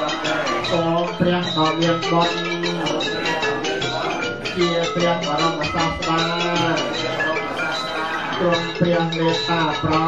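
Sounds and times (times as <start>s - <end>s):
low voice chanting: 0.0s - 10.0s
musical accompaniment: 0.0s - 10.0s.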